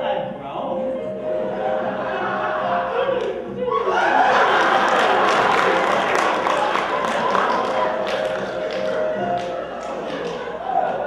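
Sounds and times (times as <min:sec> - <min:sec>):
faint music: 0:00.0 - 0:11.0
audience applauding: 0:03.2 - 0:11.0.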